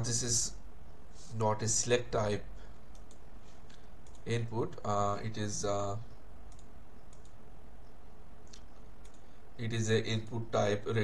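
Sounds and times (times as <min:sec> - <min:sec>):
low room hum: 0:00.0 - 0:11.0
computer mouse clicks: 0:02.9 - 0:04.3, 0:06.5 - 0:09.3.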